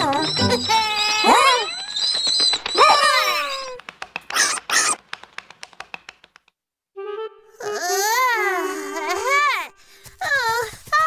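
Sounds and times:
squeaky cartoon vocal sounds: 0.0s - 5.0s
quick run of ticks: 0.0s - 6.6s.

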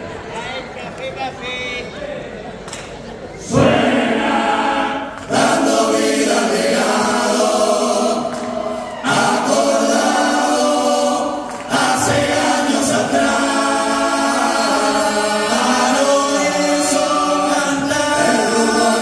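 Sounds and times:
men's chorus singing in harmony: 3.4s - 19.0s.

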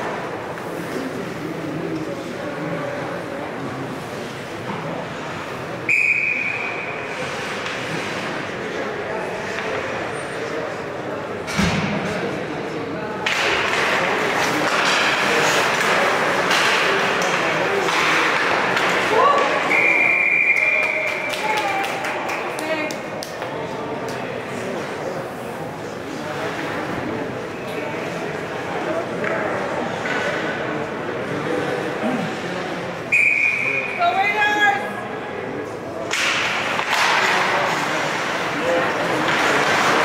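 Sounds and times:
skates scraping ice: 7.1s - 8.7s, 13.3s - 19.7s, 36.1s - 40.0s
hockey sticks cracking: 13.2s - 19.7s, 36.0s - 40.0s
stick and puck knocks: 36.0s - 37.8s.

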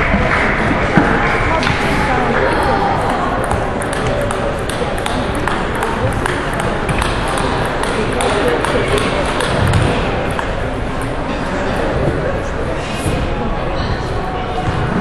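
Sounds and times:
murmur of voices: 0.0s - 15.0s
table tennis balls clicking: 2.6s - 11.3s.

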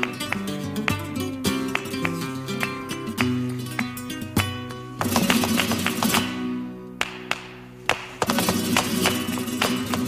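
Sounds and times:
flamenco guitar: 0.0s - 10.0s
hand clapping: 0.0s - 10.0s
footwork stamping: 4.4s - 6.4s, 7.4s - 10.0s.

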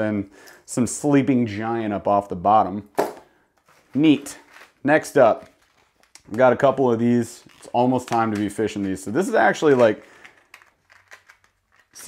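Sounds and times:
packaging crinkling: 3.6s - 12.0s.

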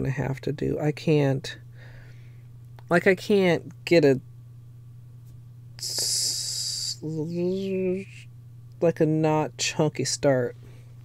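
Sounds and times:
steady low hum: 0.0s - 11.0s
person's breath hissing: 1.8s - 2.4s, 5.9s - 6.9s.

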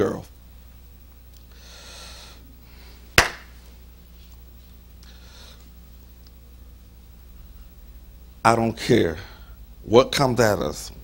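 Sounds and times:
low steady hum: 0.0s - 11.0s
hand clap: 3.2s - 3.5s.

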